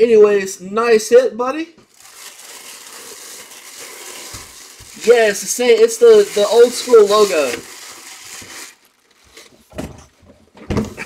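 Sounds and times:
plastic bag crinkling: 0:01.8 - 0:09.8.

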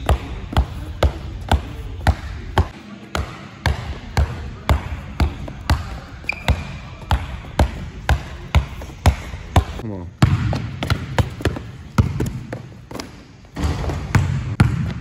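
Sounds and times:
basketball dribbling on court: 0:00.0 - 0:15.0
high squeak: 0:06.2 - 0:06.7.

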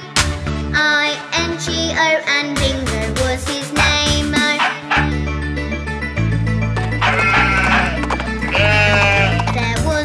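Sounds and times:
cheerful children's song: 0:00.0 - 0:08.0, 0:09.4 - 0:10.0
sheep bleating: 0:06.9 - 0:09.6.

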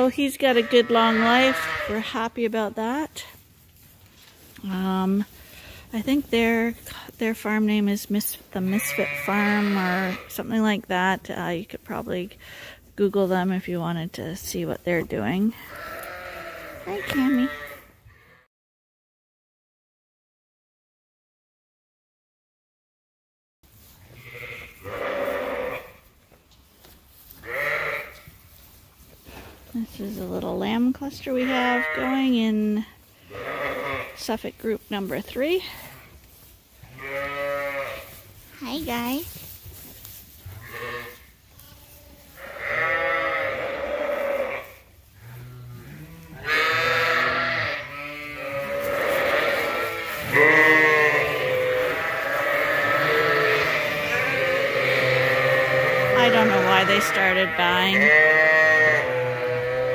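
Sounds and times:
sheep bleating: 0:00.4 - 0:02.2, 0:08.6 - 0:10.4, 0:15.6 - 0:18.5, 0:24.2 - 0:26.0, 0:27.4 - 0:28.2, 0:31.2 - 0:32.5, 0:33.2 - 0:34.2, 0:36.9 - 0:39.0, 0:40.6 - 0:59.9.

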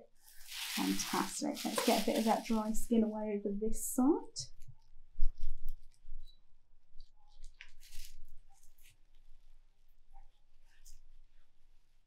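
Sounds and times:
plastic apron crinkling: 0:00.2 - 0:03.1, 0:07.3 - 0:08.9.

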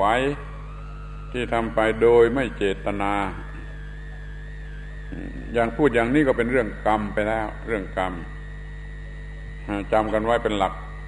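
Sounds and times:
faint high whine: 0:00.0 - 0:11.0
recording hum and hiss: 0:00.0 - 0:11.0
man's voice: 0:01.4 - 0:03.5, 0:05.2 - 0:08.3.

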